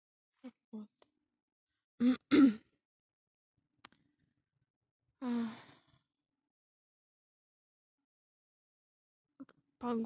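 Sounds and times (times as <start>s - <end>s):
woman sighing: 5.2s - 5.9s.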